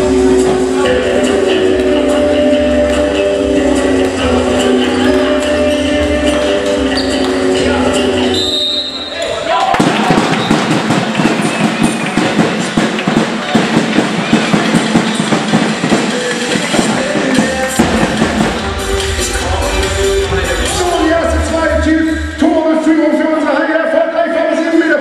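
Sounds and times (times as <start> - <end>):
music over hall speakers: 0.0 - 25.0
handball bouncing on floor: 9.7 - 18.5.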